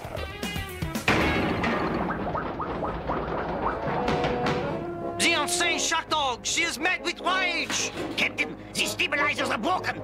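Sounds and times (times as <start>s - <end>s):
cartoon rumbling clatter: 1.1s - 4.9s.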